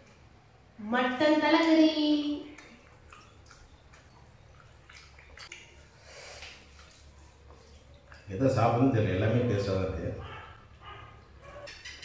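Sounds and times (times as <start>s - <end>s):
eating by hand: 2.5s - 8.8s.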